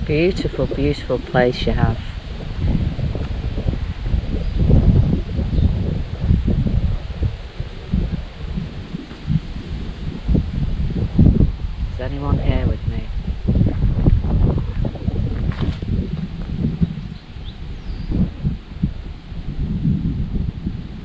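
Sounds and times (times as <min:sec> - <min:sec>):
leaves rustling: 0:00.0 - 0:11.9, 0:13.1 - 0:21.0
wind buffeting microphone: 0:00.0 - 0:21.0.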